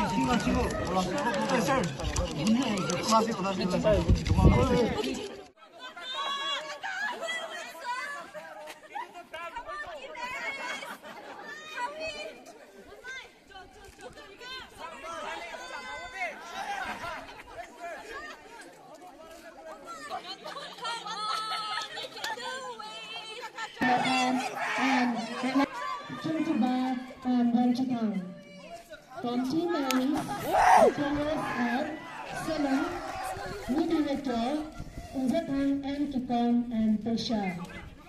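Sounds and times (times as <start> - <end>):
indistinct chatter of voices: 0.0 - 38.0.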